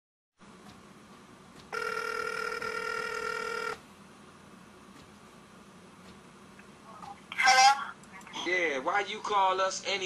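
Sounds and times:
telephone ringback tone: 1.7 - 3.8.

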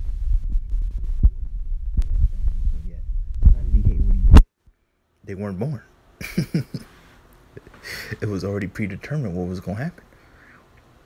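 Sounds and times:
rumbling and thumping on microphone: 0.0 - 4.5.

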